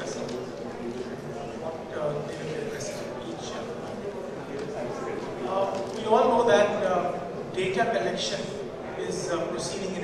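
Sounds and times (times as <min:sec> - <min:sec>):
man speaking into a microphone: 0:00.0 - 0:04.0, 0:04.6 - 0:10.0.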